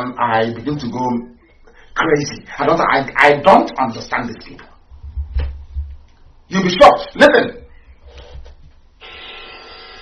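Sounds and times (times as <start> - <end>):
steady hiss with faint hum: 0.0 - 9.0.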